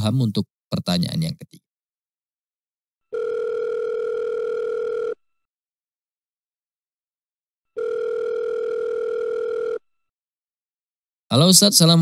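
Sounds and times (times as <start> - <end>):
telephone ringback tone: 3.1 - 5.3, 7.7 - 9.9.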